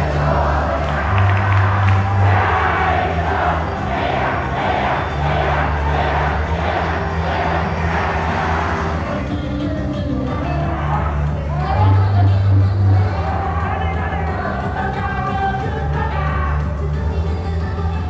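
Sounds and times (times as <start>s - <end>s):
crowd chanting rhythmically: 0.0s - 11.5s
loud pop song: 0.0s - 18.0s.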